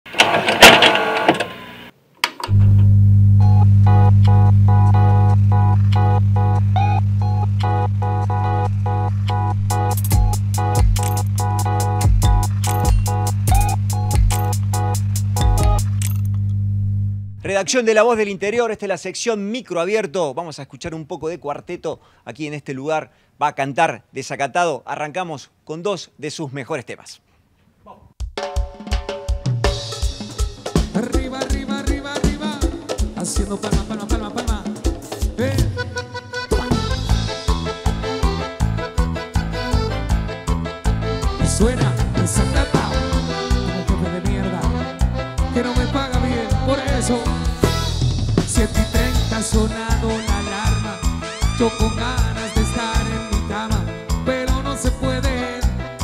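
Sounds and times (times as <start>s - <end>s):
steady low hum: 2.5s - 11.6s, 13.1s - 17.4s
bass note: 2.5s - 17.4s, 36.4s - 53.6s
held chords: 2.5s - 17.4s
organ-like chords: 2.5s - 17.4s, 34.1s - 55.1s
drums fast steady beat: 3.8s - 15.9s, 28.2s - 35.8s, 36.5s - 39.5s, 40.9s - 51.2s.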